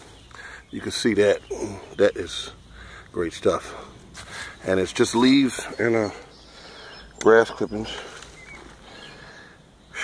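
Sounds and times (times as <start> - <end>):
faint chirp: 0.0 - 10.0.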